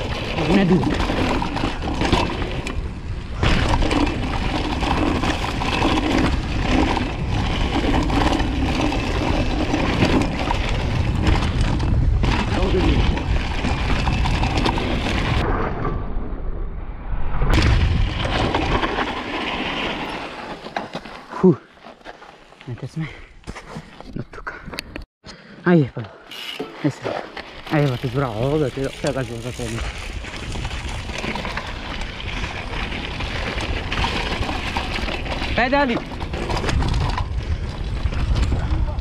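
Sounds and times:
bike rattling: 0.0 - 15.5, 17.6 - 24.0, 26.2 - 39.0
wind rumbling on microphone: 0.0 - 19.4, 28.0 - 39.0
tyres crunching on gravel: 18.0 - 23.9, 26.4 - 38.6.

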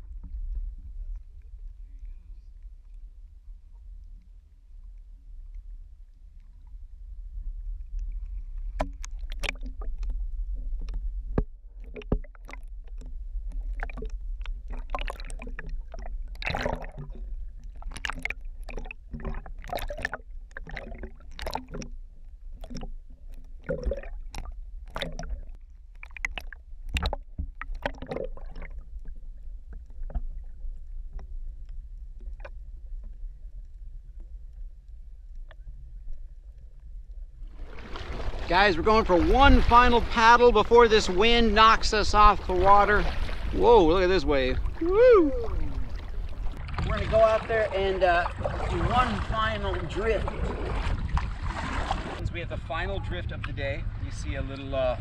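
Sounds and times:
low underwater rumble: 0.0 - 55.0
sea water sloshing and splashing: 6.1 - 34.5, 37.4 - 52.2.

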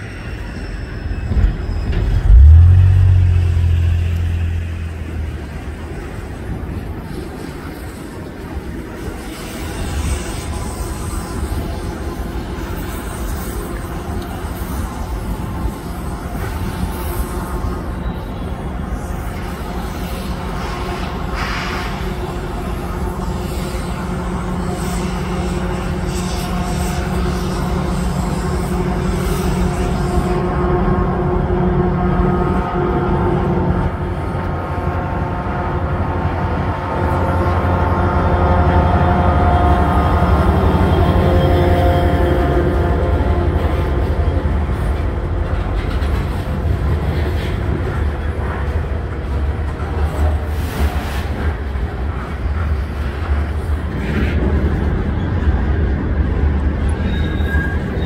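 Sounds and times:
diesel locomotive engine rumble: 0.0 - 58.0
tank cars rolling on rails: 42.8 - 58.0.

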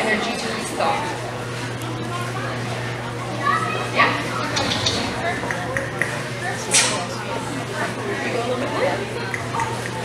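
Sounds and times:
voices chattering: 0.0 - 10.0
steady low hum: 3.9 - 8.1.

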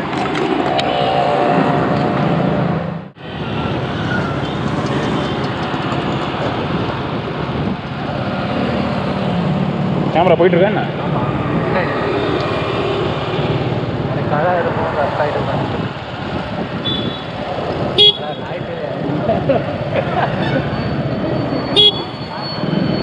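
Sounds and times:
motorcycle engine and road noise: 0.0 - 23.0.

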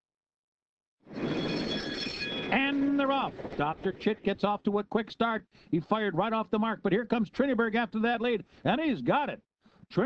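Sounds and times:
starting gate bell ringing: 1.2 - 2.8.

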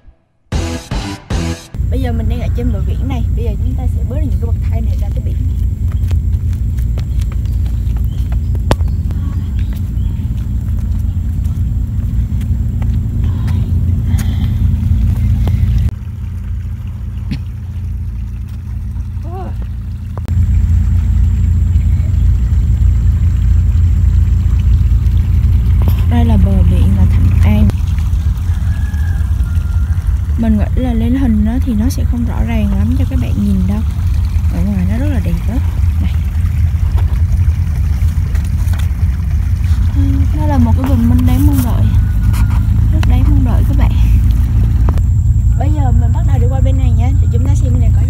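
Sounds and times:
wind buffeting microphone: 1.8 - 17.5.

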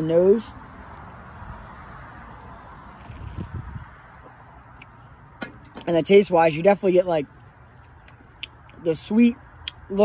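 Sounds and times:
man speaking: 5.8 - 7.3, 8.8 - 10.0.

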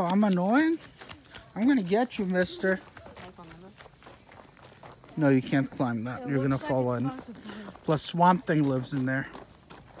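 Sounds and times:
footsteps running on wood chips: 0.0 - 10.0.

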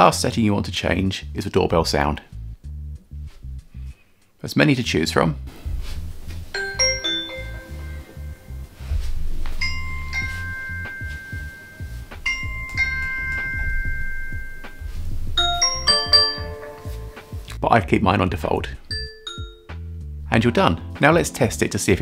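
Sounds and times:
busy multi-tone doorbell chime: 6.5 - 9.0, 9.6 - 17.4, 18.9 - 19.8
falling two-note electronic chime: 6.6 - 8.8, 9.6 - 17.5.

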